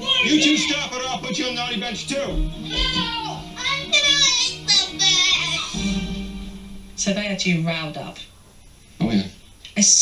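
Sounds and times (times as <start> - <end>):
background music: 0.0 - 8.1.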